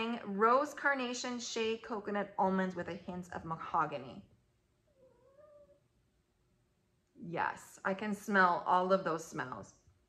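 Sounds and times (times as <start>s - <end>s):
cat meowing: 4.9s - 5.8s.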